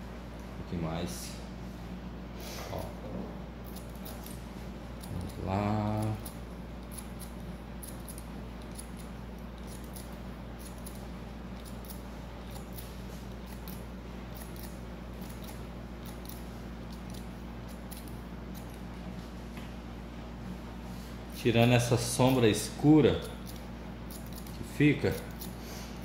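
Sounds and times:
steady low hum: 0.0 - 26.0
scissors snipping hair: 3.6 - 4.4, 5.0 - 18.9, 22.1 - 25.6.

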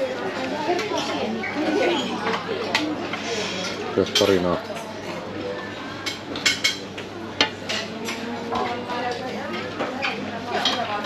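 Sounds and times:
murmur of voices: 0.0 - 11.0
metal tongs clinking against pots: 6.0 - 11.0.

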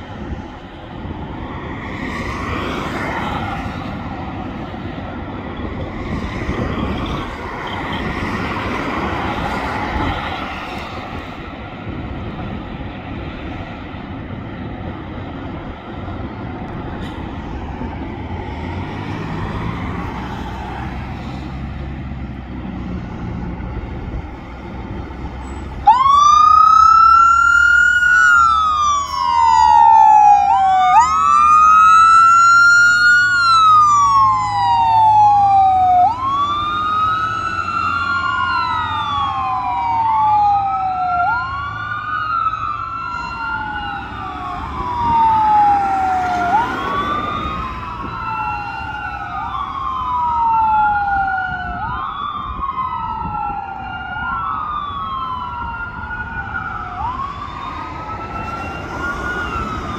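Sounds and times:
fire engine motor rumbling: 0.0 - 3.0, 3.6 - 59.9
wailing siren: 0.0 - 59.9.

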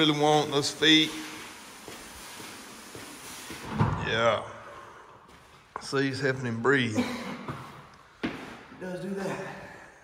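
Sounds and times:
sled scraping across turf: 0.0 - 4.2.

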